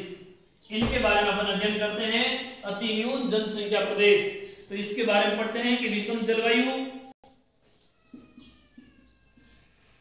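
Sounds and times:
marker squeaking on whiteboard: 7.2s - 10.0s.

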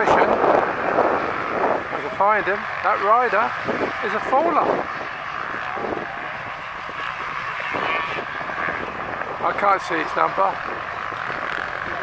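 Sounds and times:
motorcycle engines buzzing: 0.0s - 12.0s.

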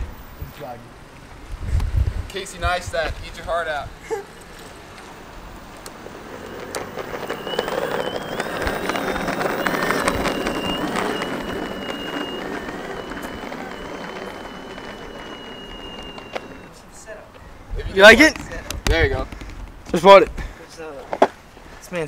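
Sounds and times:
skateboard wheels rumbling on asphalt: 1.0s - 21.8s
electric skateboard motor whine: 5.5s - 16.8s.

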